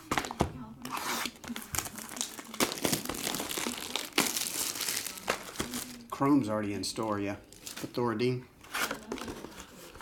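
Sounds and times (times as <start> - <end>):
plastic shrink wrap crinkling and tearing: 0.8 - 6.2.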